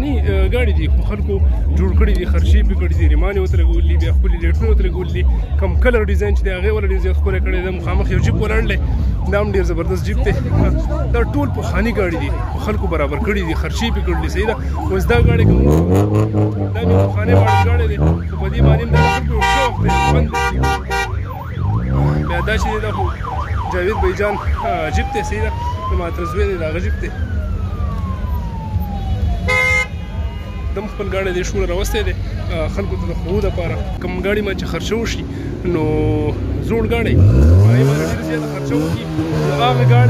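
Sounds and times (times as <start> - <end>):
crowd voices: 0.0 - 40.0
low engine rumble: 0.0 - 40.0
electronic siren: 11.6 - 30.8.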